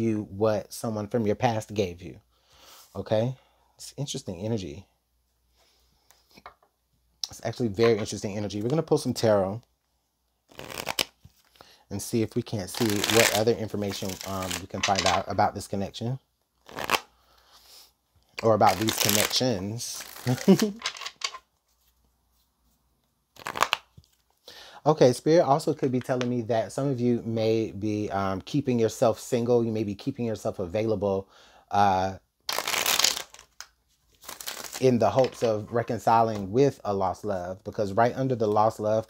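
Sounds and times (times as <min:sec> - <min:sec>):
cards riffle shuffled: 0:10.5 - 0:11.6, 0:12.6 - 0:15.3, 0:16.6 - 0:17.0, 0:18.4 - 0:21.9, 0:23.4 - 0:24.3, 0:32.5 - 0:35.7
cards rustling: 0:10.5 - 0:11.6, 0:12.4 - 0:15.3, 0:18.4 - 0:22.0, 0:23.4 - 0:24.4, 0:32.5 - 0:36.5.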